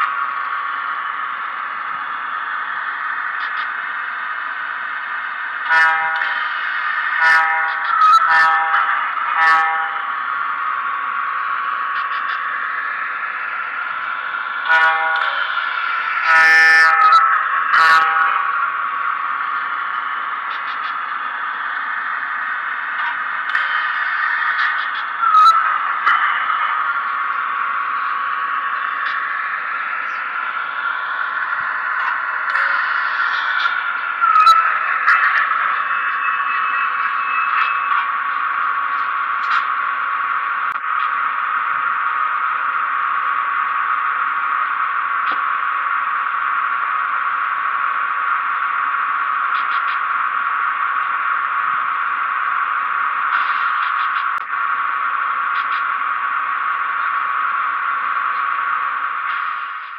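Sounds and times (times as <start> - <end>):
electric locomotive hissing hum: 0.0 - 59.9.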